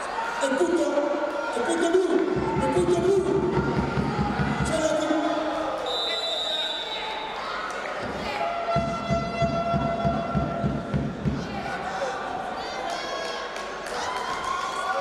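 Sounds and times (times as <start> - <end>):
high whistle-like tone: 5.8 - 7.2.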